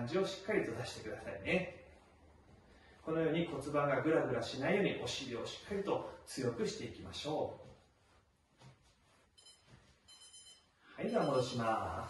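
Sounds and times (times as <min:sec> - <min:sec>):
stopwatch alarm beeping: 0:09.4 - 0:12.0.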